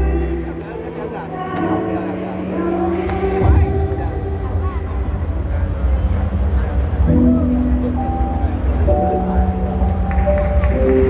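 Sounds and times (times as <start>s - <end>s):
sustained keyboard chords: 6.4s - 11.0s.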